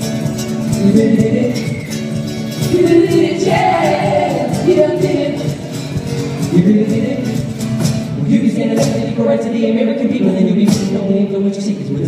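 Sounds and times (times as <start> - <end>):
acoustic guitar: 0.0 - 12.0
man singing: 0.6 - 5.7, 6.4 - 12.0.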